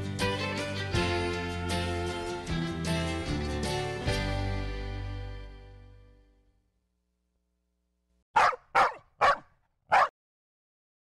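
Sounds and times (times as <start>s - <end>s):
dog barking: 8.4s - 10.2s.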